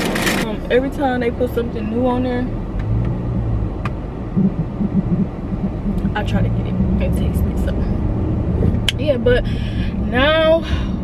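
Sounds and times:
car cabin rumble: 0.0s - 11.0s
soft low thumps: 2.8s - 9.4s.

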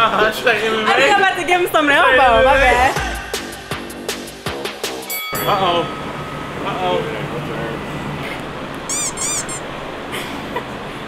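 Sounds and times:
sneaker squeaks: 8.9s - 9.7s.

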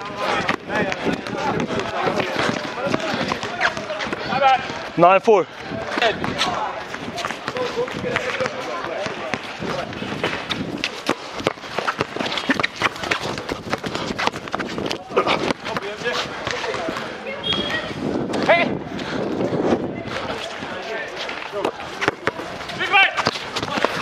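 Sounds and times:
basketball bouncing on concrete: 0.0s - 4.9s, 5.8s - 18.5s, 21.6s - 24.0s
footfalls: 0.0s - 5.0s, 5.9s - 17.1s
players calling out: 0.0s - 19.0s, 20.1s - 24.0s.

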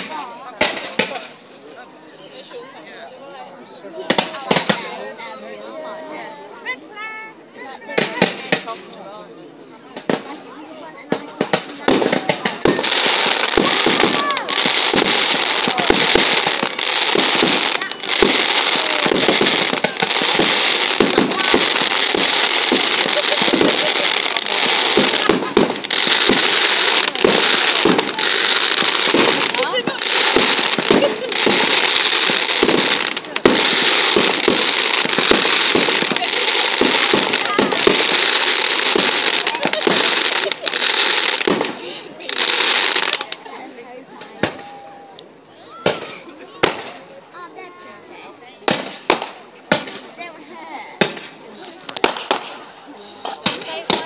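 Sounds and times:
fireworks bangs: 0.0s - 1.4s, 3.7s - 5.4s, 7.8s - 9.0s, 9.9s - 43.5s, 44.1s - 47.7s, 48.5s - 54.0s
fireworks crackling: 0.0s - 54.0s.

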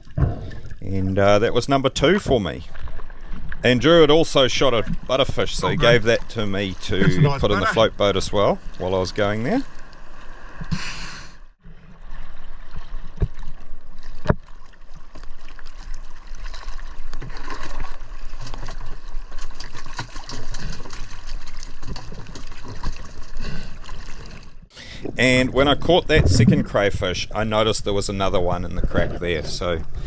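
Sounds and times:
sea water sloshing and splashing: 0.0s - 1.0s, 2.0s - 30.0s.

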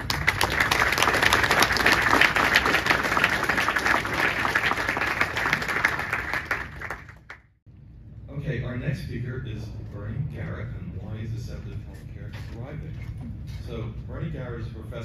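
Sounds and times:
audience applauding: 0.0s - 7.5s.

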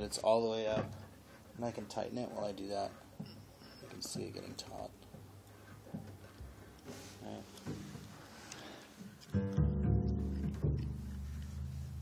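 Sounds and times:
double bass strings plucked: 9.4s - 11.9s.

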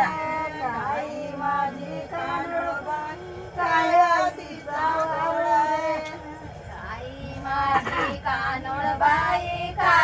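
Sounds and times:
women singing grinding song: 0.0s - 10.0s.

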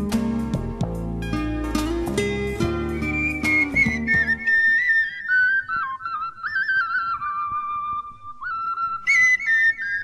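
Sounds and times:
plucked string and bass accompaniment: 0.0s - 4.5s
flute-like melody: 2.5s - 10.0s.

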